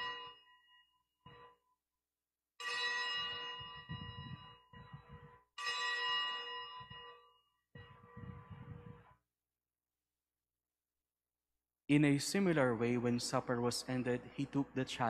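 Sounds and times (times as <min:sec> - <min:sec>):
altar bells ringing: 0:00.0 - 0:01.6, 0:02.6 - 0:09.0.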